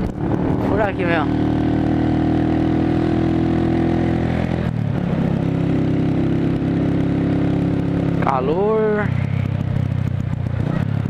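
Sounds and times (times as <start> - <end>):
motorcycle engine running: 0.0 - 11.0
road and wind noise: 0.0 - 11.0.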